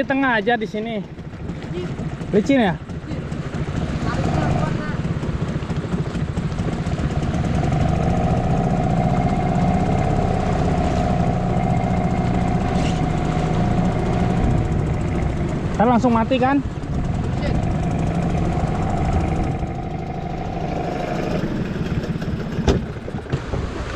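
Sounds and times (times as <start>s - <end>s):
outboard motor running: 0.0s - 23.9s.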